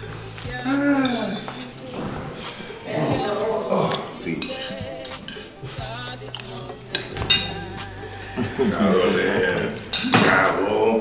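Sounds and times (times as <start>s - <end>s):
music: 0.0s - 11.0s
voice: 0.5s - 11.0s
spoons clinking on plates: 1.0s - 7.8s, 9.1s - 10.3s.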